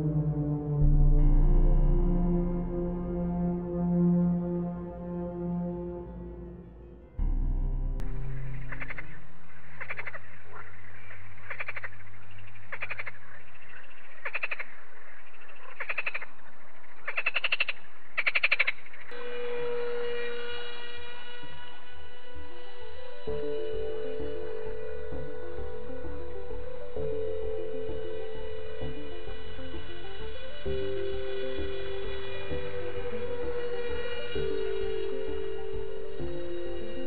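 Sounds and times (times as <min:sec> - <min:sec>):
background music with bass: 0:00.0 - 0:09.7, 0:20.8 - 0:37.0
low background tones: 0:00.0 - 0:15.6
frog croaking: 0:08.2 - 0:19.1.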